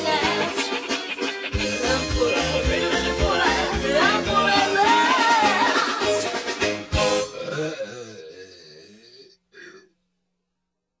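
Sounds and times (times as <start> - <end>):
throaty vocal sound: 7.0 - 10.0.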